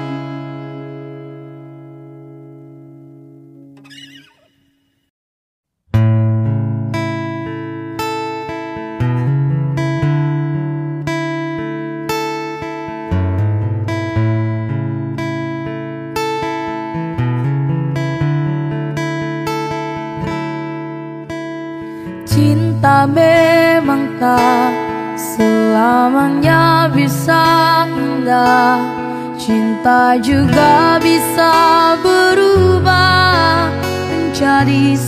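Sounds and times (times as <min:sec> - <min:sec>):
acoustic guitar fingerpicked and strummed: 0:00.0 - 0:04.7, 0:05.9 - 0:35.0.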